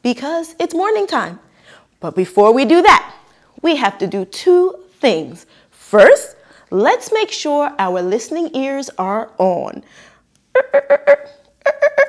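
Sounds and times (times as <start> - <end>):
woman making beeping sounds: 10.5 - 12.0.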